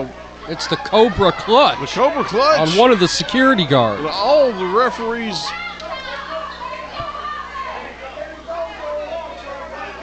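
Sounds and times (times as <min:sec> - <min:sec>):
crowd talking and calling out: 0:00.0 - 0:10.0
children's voices: 0:04.0 - 0:07.9.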